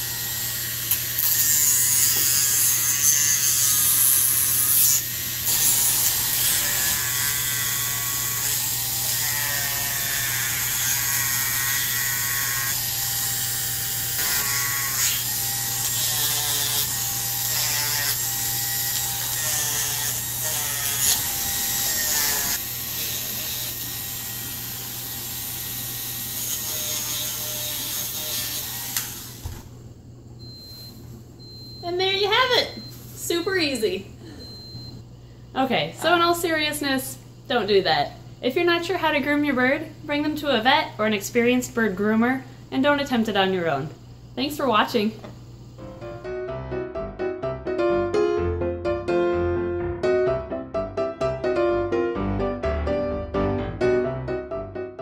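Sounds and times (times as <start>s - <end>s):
rotary tool grinding: 0.0s - 29.5s.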